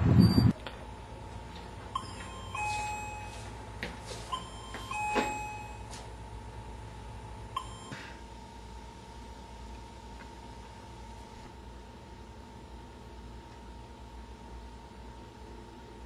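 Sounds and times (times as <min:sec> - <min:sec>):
door chime ding-dong: 0:02.0 - 0:03.5, 0:04.3 - 0:06.0, 0:07.6 - 0:08.0.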